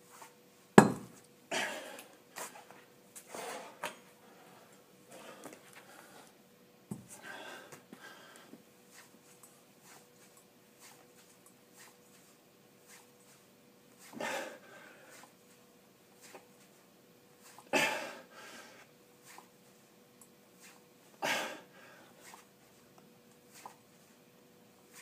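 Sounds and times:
faint steady hum: 0.0s - 25.0s
man breathing hard: 7.1s - 8.6s, 14.1s - 15.3s.

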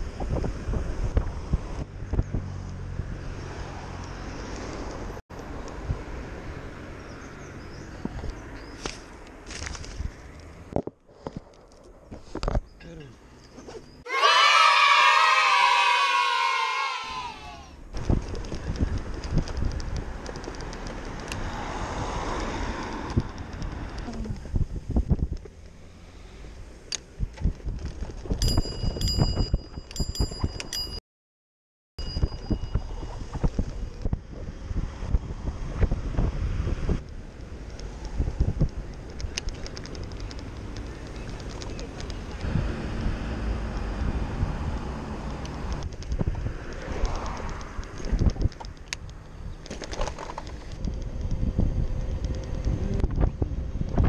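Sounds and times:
wind on microphone: 0.0s - 3.9s, 17.9s - 25.6s, 26.6s - 31.0s, 32.0s - 54.0s
city traffic noise: 0.0s - 31.0s, 32.0s - 54.0s
quick high rings: 32.0s - 33.2s.

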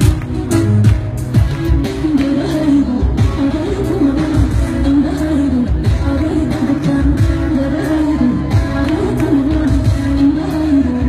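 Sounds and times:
person singing: 1.8s - 11.0s.

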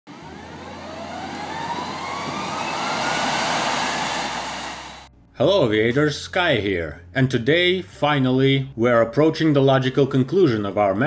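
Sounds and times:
jet engine spooling up: 0.1s - 5.1s.

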